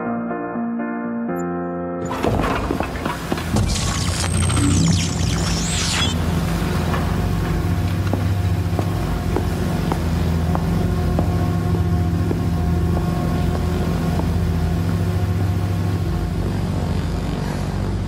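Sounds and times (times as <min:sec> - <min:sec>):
bike rattling over cobblestones: 0:02.1 - 0:03.6.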